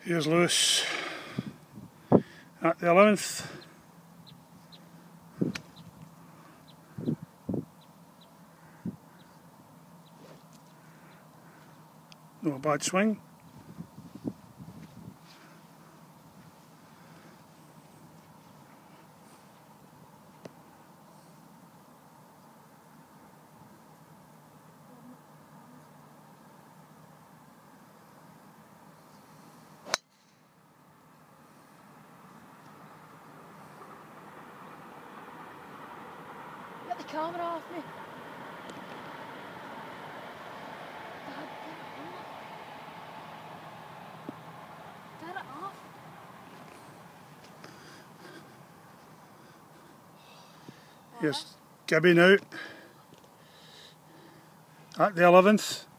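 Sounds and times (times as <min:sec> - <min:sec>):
faint bird chirps: 0:03.6 - 0:05.1, 0:05.7 - 0:12.0
golf club striking ball: 0:29.8 - 0:30.5.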